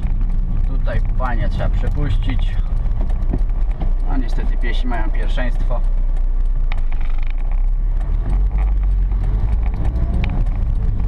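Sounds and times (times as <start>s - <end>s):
car engine drone from inside: 0.0s - 11.0s
faint ticks: 0.0s - 11.0s.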